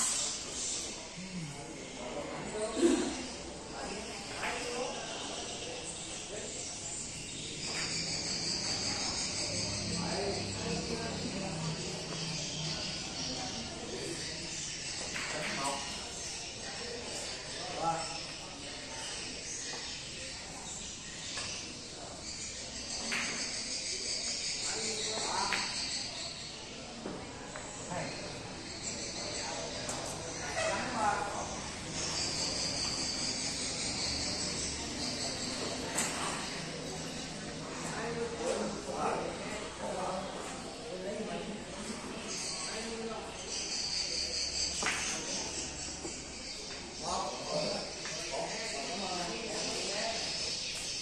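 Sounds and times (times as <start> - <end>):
steady high chirring: 3.4 - 15.2, 28.2 - 35.9
high-pitched insect chirring: 6.7 - 10.9, 31.4 - 35.6.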